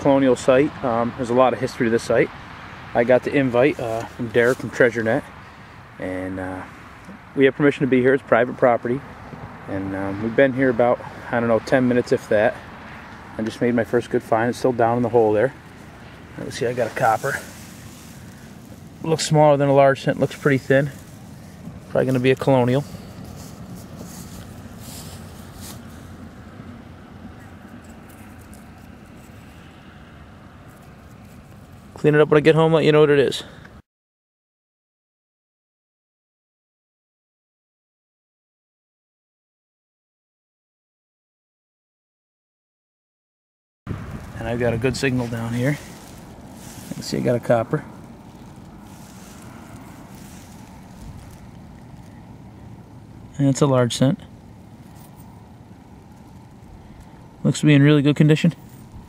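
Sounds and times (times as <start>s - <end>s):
low outdoor rumble: 2.9s - 33.6s, 43.9s - 59.0s
faint handling noises: 13.1s - 26.4s, 44.1s - 52.8s
wind buffeting microphone: 43.9s - 47.2s.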